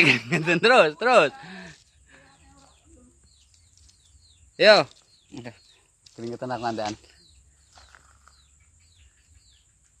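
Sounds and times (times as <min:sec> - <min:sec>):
faint bird chirps: 0:00.6 - 0:10.0.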